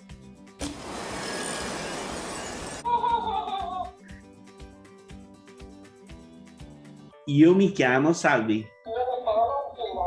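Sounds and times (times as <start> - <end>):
loud burst of noise: 0.6 - 2.8
quiet background music: 2.8 - 10.0.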